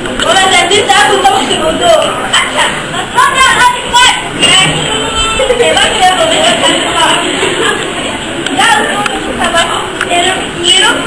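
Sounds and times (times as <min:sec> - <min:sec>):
girl exclaiming in echoing hall: 0:00.3 - 0:06.2.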